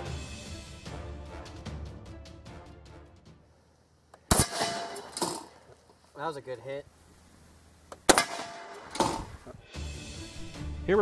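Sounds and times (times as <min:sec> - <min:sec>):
background music: 0:00.0 - 0:03.6, 0:08.9 - 0:11.0
gunshots: 0:04.3 - 0:05.4, 0:08.1 - 0:09.3.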